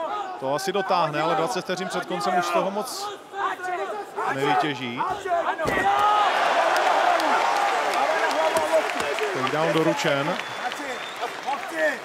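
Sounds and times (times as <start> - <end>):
crowd cheering and shouting: 4.2 - 12.0.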